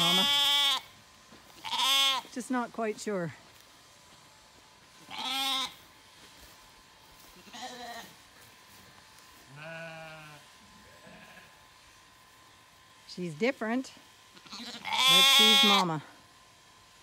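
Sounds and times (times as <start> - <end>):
sheep bleating: 0.0 - 0.9, 1.5 - 2.3, 5.0 - 5.8, 7.4 - 8.2, 9.5 - 11.6, 14.4 - 16.0.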